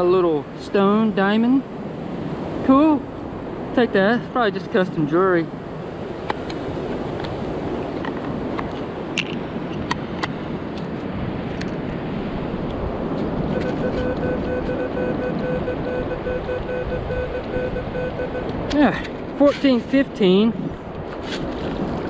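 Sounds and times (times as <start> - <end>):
surf hiss: 0.0 - 7.8, 17.2 - 22.0
wind: 0.0 - 22.0
metal detector tone: 13.5 - 18.6.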